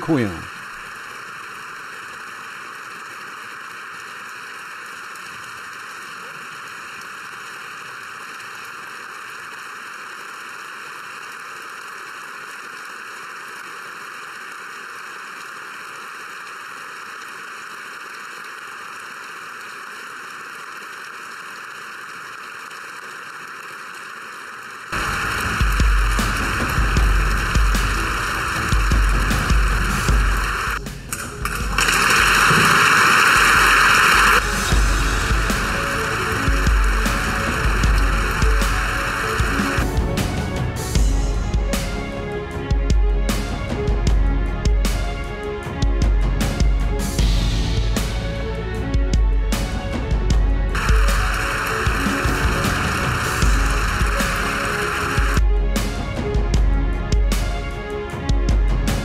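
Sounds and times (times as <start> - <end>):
crowd clapping: 10.6 - 40.3, 50.8 - 55.4
music with pulsing bass beat: 25.0 - 59.0.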